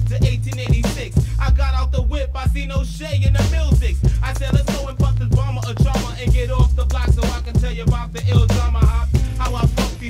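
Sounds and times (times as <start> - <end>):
deep bassline: 0.0 - 10.0
rapping: 0.0 - 10.0
steady drum beat: 0.0 - 10.0.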